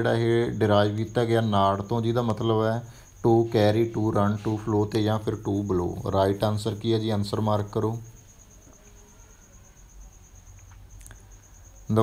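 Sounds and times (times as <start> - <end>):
faint click: 10.5 - 11.2.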